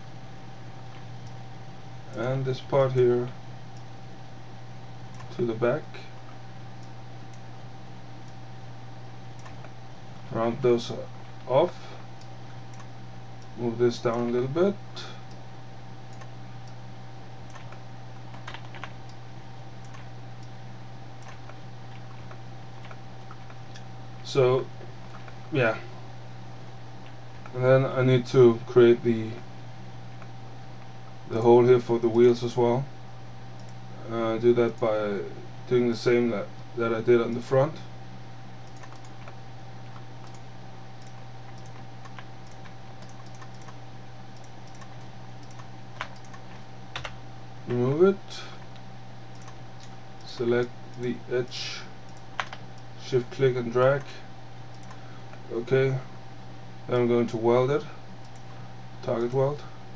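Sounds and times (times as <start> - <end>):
low electrical hum: 0.0 - 59.9
computer mouse and keyboard clicks: 5.1 - 5.4, 9.4 - 9.8, 16.1 - 16.8, 17.5 - 19.2, 19.8 - 20.6, 21.2 - 23.9, 38.6 - 43.8, 44.4 - 47.2, 48.6 - 50.0, 52.1 - 52.9, 54.7 - 55.4
mouse and keyboard clicks: 17.5 - 19.0, 38.6 - 40.4.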